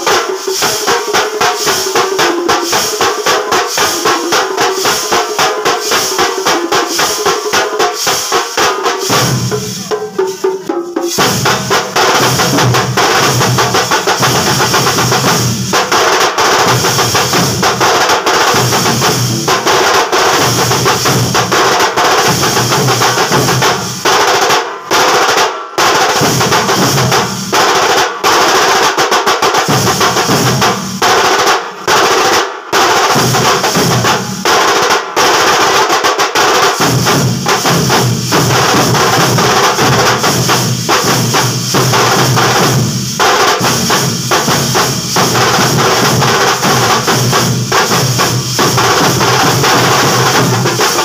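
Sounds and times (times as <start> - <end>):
brass hand cymbals clashing: 0.0 - 24.7, 36.5 - 51.0
large drums playing fast rolls: 0.0 - 51.0.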